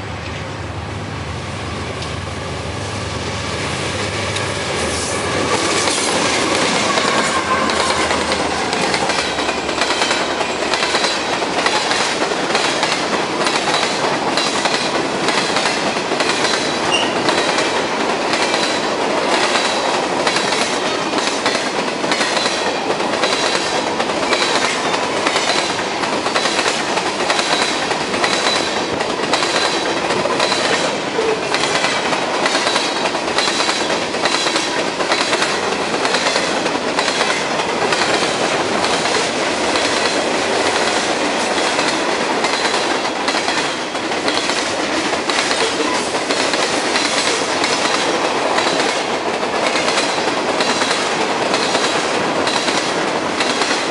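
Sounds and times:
locomotives rumbling: 3.2s - 12.2s
train wheels clickety-clack: 4.0s - 53.9s
high wheel squeal: 4.8s - 9.8s, 16.9s - 17.3s.

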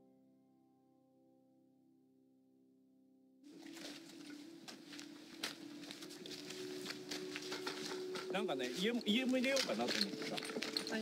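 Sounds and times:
footsteps on dirt and stone: 3.5s - 11.0s.

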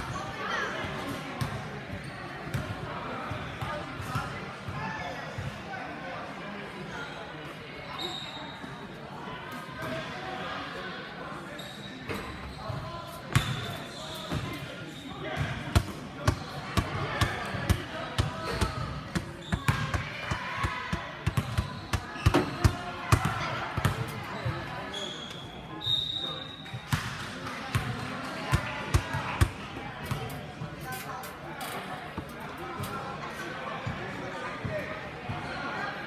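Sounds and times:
murmur of voices: 0.0s - 36.0s.

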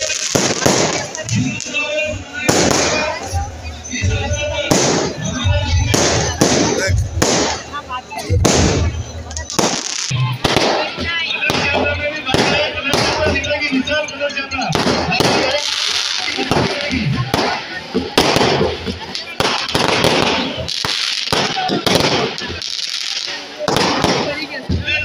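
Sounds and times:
fireworks banging: 0.0s - 25.0s.

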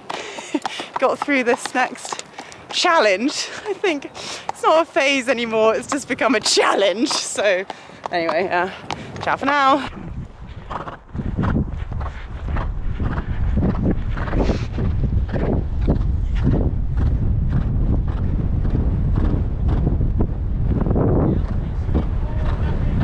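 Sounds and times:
horse cantering on sand: 0.0s - 20.0s
wind buffeting microphone: 0.0s - 23.0s.

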